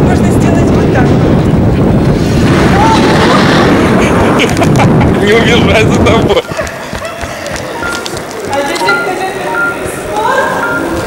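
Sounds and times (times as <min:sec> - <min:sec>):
voices: 0:05.1 - 0:11.0.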